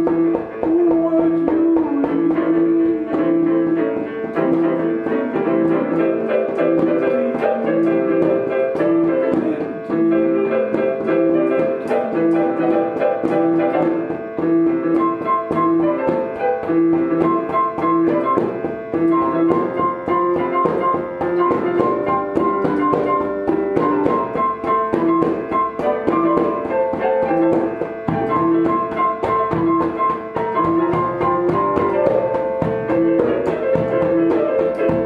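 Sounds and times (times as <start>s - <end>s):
improvised piano playing: 0.0s - 35.0s.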